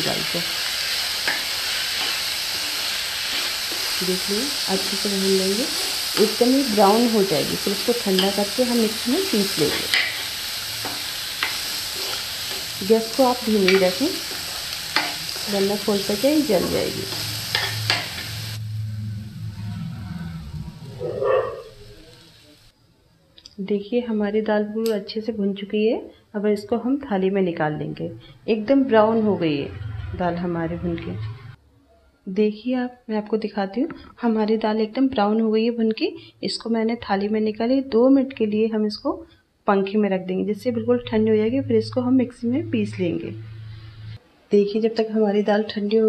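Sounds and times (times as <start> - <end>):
lentils sizzling in a pan: 0.0 - 18.9, 20.8 - 22.7
spoon scraping a pan: 1.2 - 7.0, 7.6 - 18.6.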